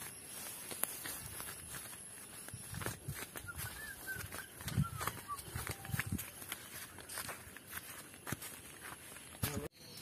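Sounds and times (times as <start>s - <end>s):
footsteps on dirt path: 0.0s - 9.7s.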